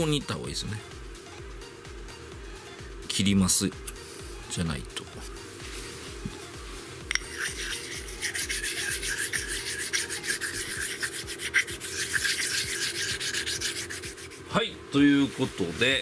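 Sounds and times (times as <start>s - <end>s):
oil stone scraping metal: 7.1s - 14.5s.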